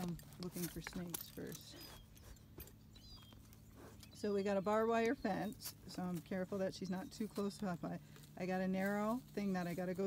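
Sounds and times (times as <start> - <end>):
faint high chirp: 1.6 - 5.8.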